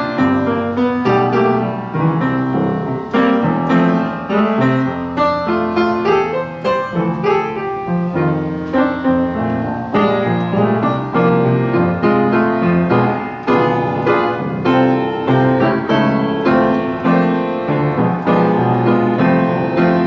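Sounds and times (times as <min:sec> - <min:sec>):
piano playing chords: 0:00.0 - 0:20.0.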